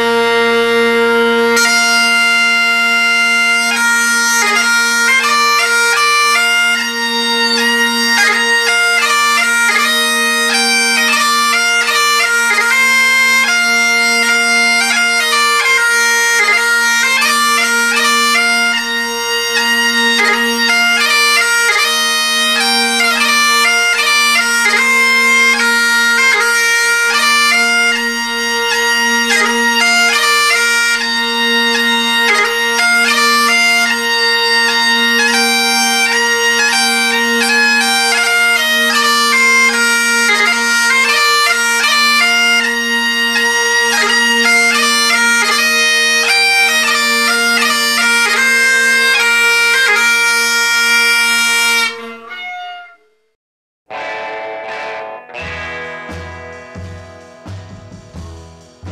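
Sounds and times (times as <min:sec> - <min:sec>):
bagpipe drones humming: 0:00.0 - 0:53.2, 0:53.9 - 0:58.9
bagpipe chanter tune: 0:00.0 - 0:58.9.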